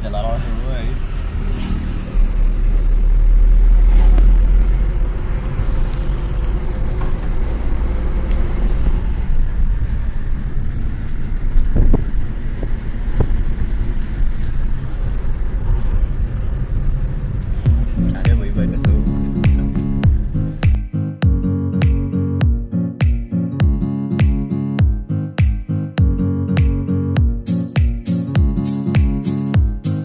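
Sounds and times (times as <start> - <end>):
car engine and road rumble: 0.0 - 30.0.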